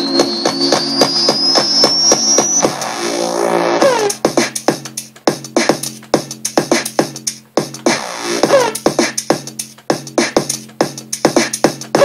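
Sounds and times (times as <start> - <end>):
drum machine beat: 0.0 - 3.1, 3.8 - 12.0
hazy falling pitch sweep: 0.0 - 3.9.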